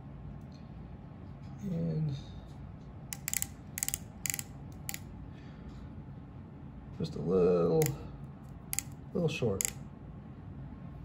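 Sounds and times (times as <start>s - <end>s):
micrometer ratchet clicking: 3.1s - 5.1s, 8.7s - 9.0s, 9.6s - 9.8s.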